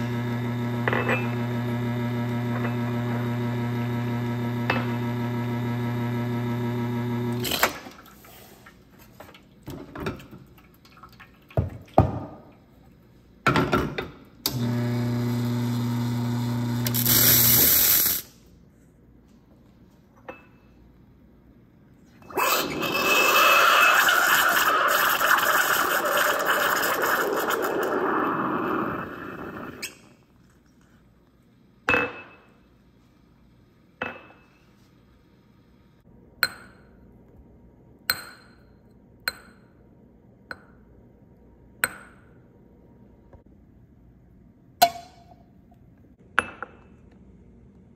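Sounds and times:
espresso machine pump humming: 0:00.0 - 0:07.4, 0:14.5 - 0:17.6.

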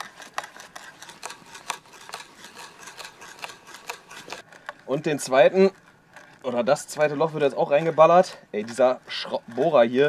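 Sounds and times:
hand drill boring into log: 0:00.0 - 0:10.0.

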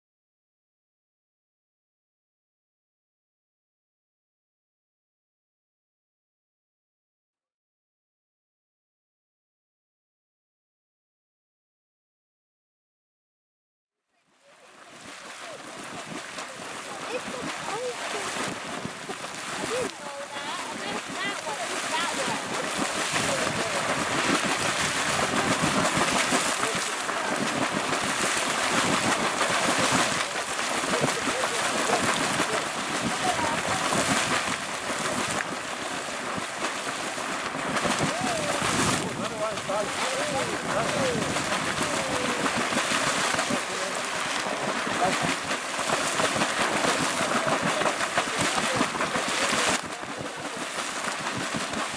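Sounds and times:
geyser water splashing: 0:14.4 - 0:51.9.

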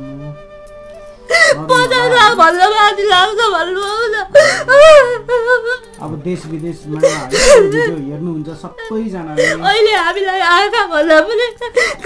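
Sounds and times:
woman wailing and sobbing: 0:01.3 - 0:06.0, 0:07.0 - 0:08.0, 0:08.8 - 0:12.0.

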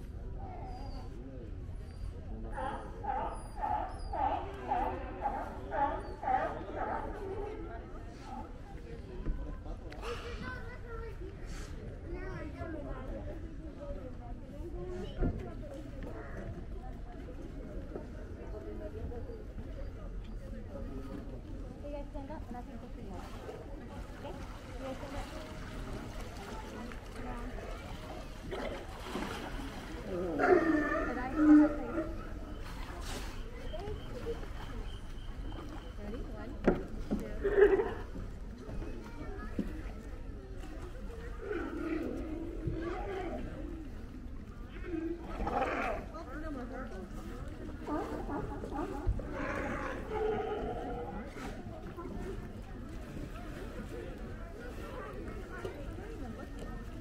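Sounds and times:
sea lions barking: 0:02.6 - 0:07.2, 0:30.3 - 0:32.6.

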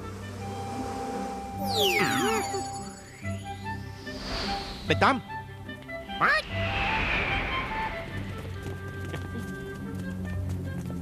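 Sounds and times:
film soundtrack music: 0:00.0 - 0:11.0
hissing whoosh: 0:02.8 - 0:09.1.

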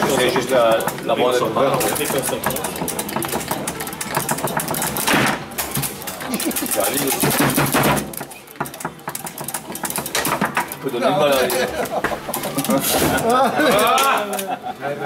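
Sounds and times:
foosball clacking: 0:00.0 - 0:14.6.

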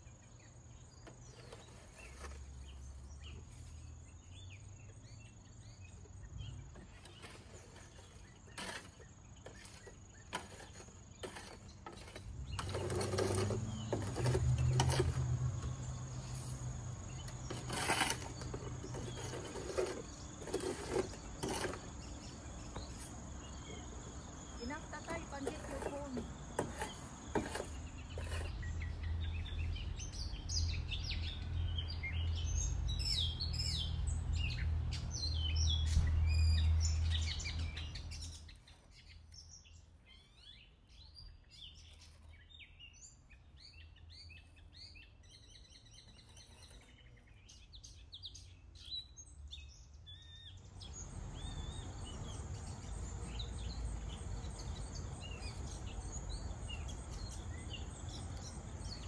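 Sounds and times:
birds chirping: 0:00.0 - 0:59.0.

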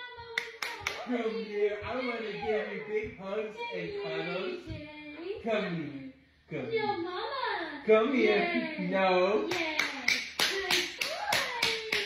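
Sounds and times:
person clapping quickly: 0:00.4 - 0:01.1, 0:09.5 - 0:12.0.

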